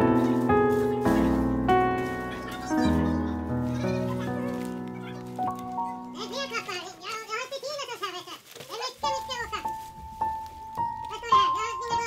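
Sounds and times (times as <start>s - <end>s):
slow instrumental music: 0.0s - 7.0s, 9.6s - 12.0s.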